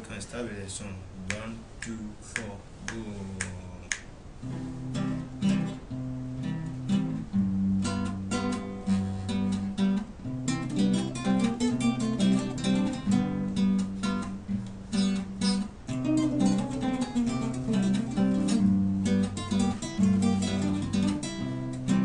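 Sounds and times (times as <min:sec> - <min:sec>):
acoustic guitars strumming chords: 0:01.2 - 0:22.0.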